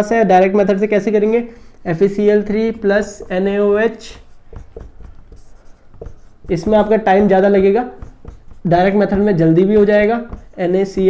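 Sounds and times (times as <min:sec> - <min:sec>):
marker writing on whiteboard: 0:00.8 - 0:11.0.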